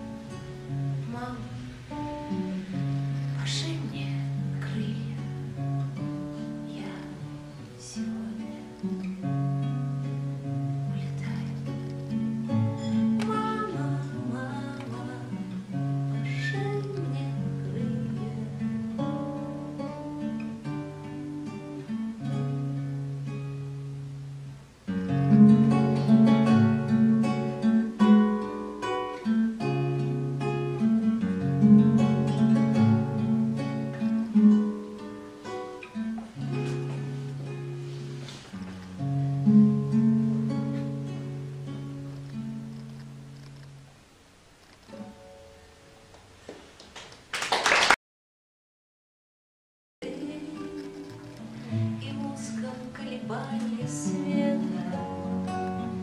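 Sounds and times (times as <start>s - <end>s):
fingerstyle classical guitar: 0.0s - 47.0s, 50.0s - 56.0s.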